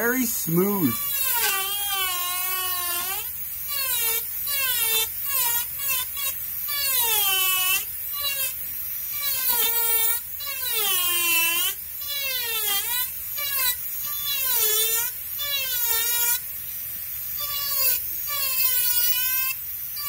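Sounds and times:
rotary carving tool whining: 0.0s - 20.0s.

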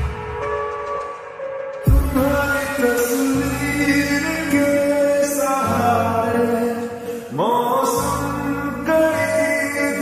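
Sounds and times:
soft musical accompaniment: 0.0s - 10.0s
slowed reverb-heavy song vocals: 1.8s - 10.0s.

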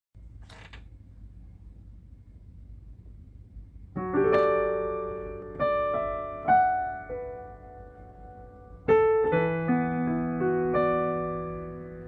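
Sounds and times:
low steady rumble: 0.2s - 10.7s.

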